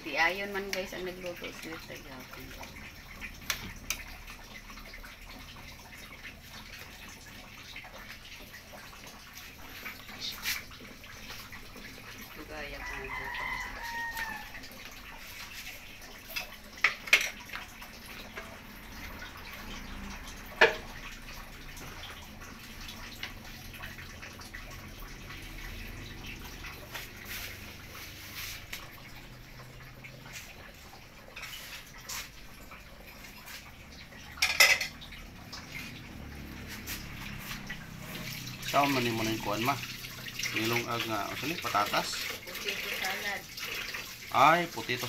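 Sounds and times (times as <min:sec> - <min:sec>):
rooster crowing: 0:12.8 - 0:14.7
dishes and cutlery clinking: 0:16.3 - 0:17.5, 0:34.4 - 0:35.0.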